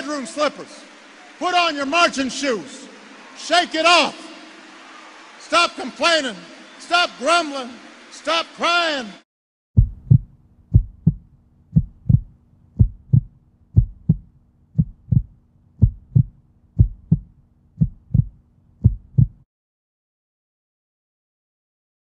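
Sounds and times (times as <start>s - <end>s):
heartbeat thumps: 9.8s - 19.4s.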